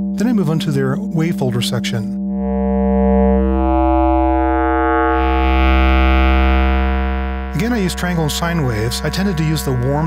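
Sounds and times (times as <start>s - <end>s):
synthesizer low steady note: 0.0s - 10.0s.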